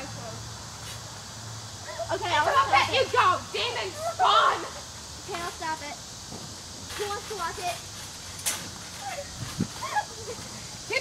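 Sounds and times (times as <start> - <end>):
trampoline snap: 6.3 - 10.1.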